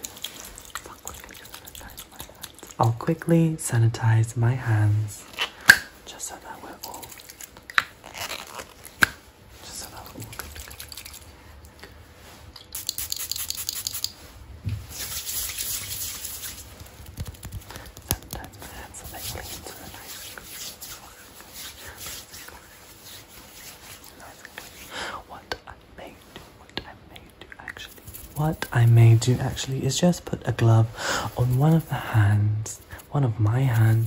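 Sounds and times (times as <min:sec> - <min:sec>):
close whispering: 0:00.7 - 0:05.3, 0:06.0 - 0:07.2, 0:09.5 - 0:10.5, 0:17.6 - 0:34.0
hands rubbing together: 0:12.2 - 0:24.9, 0:27.8 - 0:29.8, 0:31.2 - 0:34.0.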